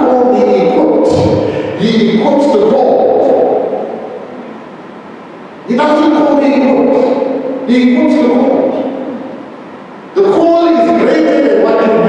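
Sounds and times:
man preaching in raised voice: 0.0 - 4.1, 5.6 - 9.0, 10.1 - 12.0.

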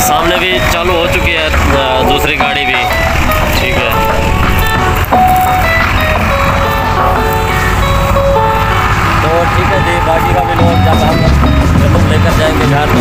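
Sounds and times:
background music: 0.0 - 13.0
thresher rumbling: 0.0 - 13.0.

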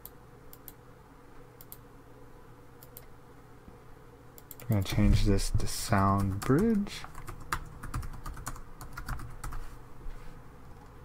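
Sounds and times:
typing on computer keyboard: 6.2 - 9.6.

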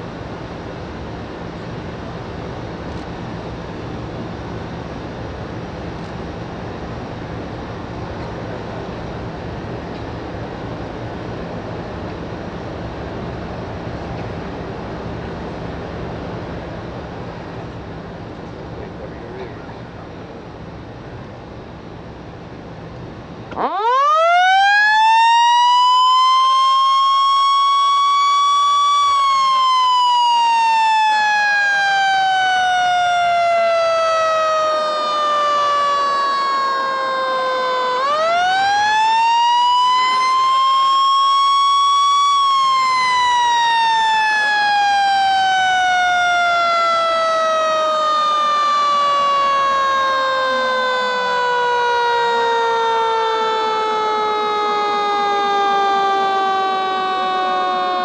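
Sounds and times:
mechanical siren wailing: 23.5 - 58.0.

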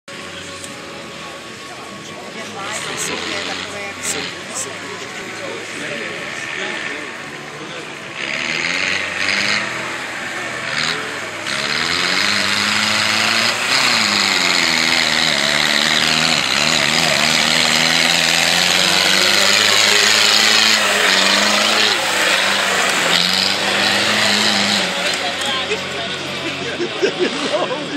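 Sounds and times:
tractor diesel engine revving: 0.0 - 27.9.

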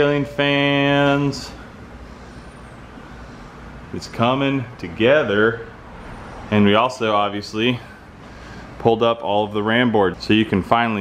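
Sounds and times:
low background rumble and hiss: 0.0 - 11.0.

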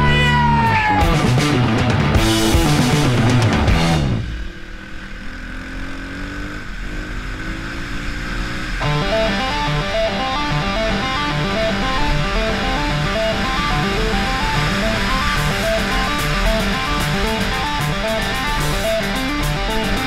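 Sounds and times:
rock music with electric guitar: 0.0 - 5.1, 7.6 - 20.0
motorbike engine accelerating: 0.8 - 20.0.

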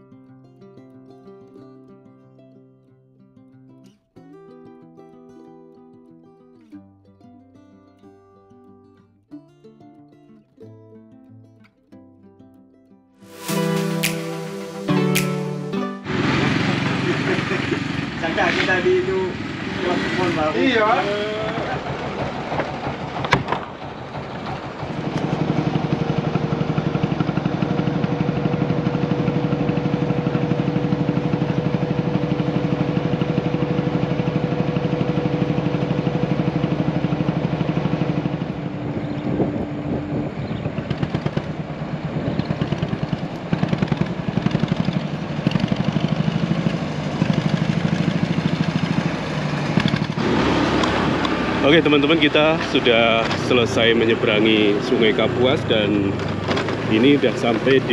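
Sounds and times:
rough uneven engine sound: 13.3 - 57.9
boat motor droning: 16.0 - 57.9.

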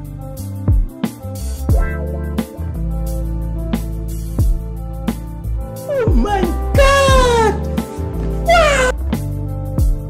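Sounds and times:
background music: 0.0 - 10.0
cat meowing: 5.9 - 7.6, 8.5 - 9.0.

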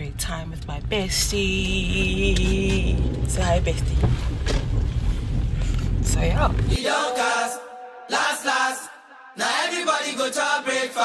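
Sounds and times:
road and wind noise in car: 0.0 - 6.8.

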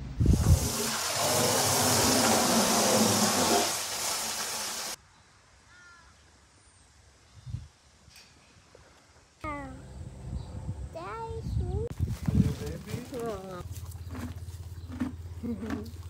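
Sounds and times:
horse blowing through nostrils: 0.2 - 4.9
faint bird chirps: 5.1 - 6.4.

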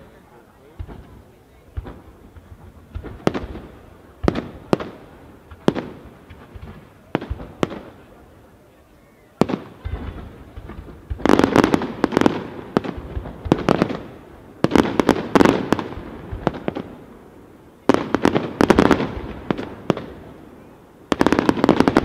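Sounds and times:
rapid firework crackling: 0.0 - 8.4, 9.4 - 17.2, 17.8 - 22.0.

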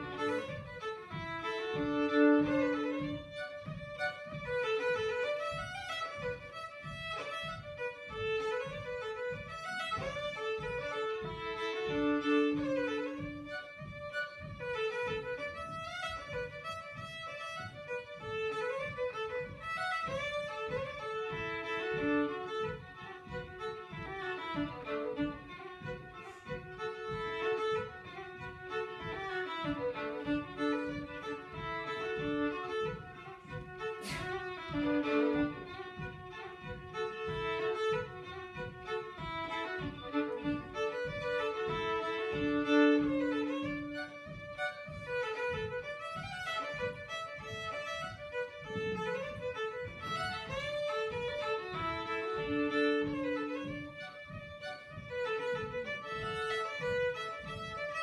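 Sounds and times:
solo fiddle dance tune: 0.0 - 58.0.

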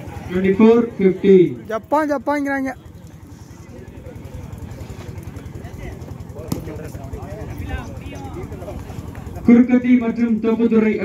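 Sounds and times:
faint chatter of people: 0.0 - 11.0.

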